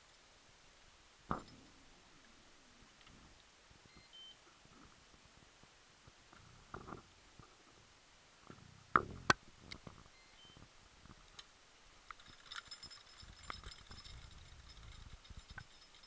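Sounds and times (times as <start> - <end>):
faint high beeps: 3.8 - 4.4, 10.1 - 10.7.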